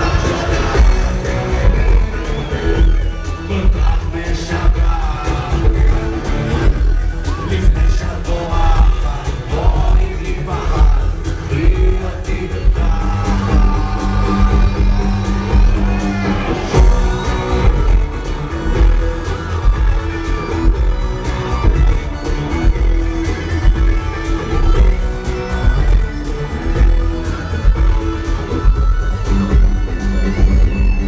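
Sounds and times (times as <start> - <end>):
live electronic rock band: 0.0 - 31.0.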